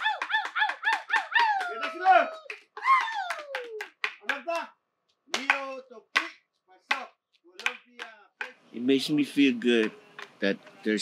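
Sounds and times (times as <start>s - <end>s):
wooden sticks clacking: 9.8s - 10.4s.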